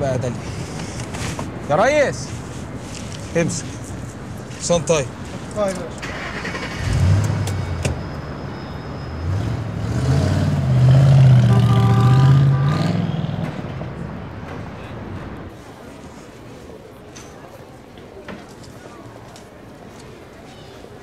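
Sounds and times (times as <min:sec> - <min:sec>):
car engine starting and revving: 0:06.0 - 0:08.2, 0:09.1 - 0:13.8.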